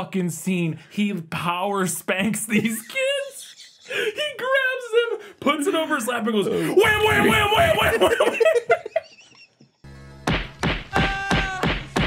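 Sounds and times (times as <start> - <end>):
hand spanking heavy whacks: 10.3 - 12.0.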